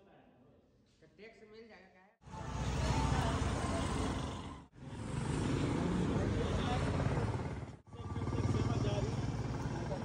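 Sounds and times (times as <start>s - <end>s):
motorcycle engine rumbling: 2.3s - 10.0s
people talking: 5.9s - 7.3s, 8.0s - 10.0s.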